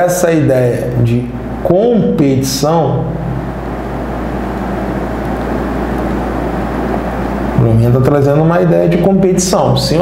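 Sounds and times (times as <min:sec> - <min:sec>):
constant low hum: 0:00.0 - 0:10.0
low rumbling noise: 0:00.0 - 0:10.0.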